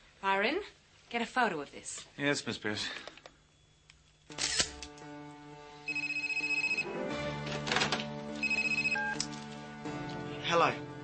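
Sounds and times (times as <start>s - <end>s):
background music: 4.3s - 11.0s
electronic telephone ringer trilling: 5.9s - 6.9s, 8.4s - 9.2s.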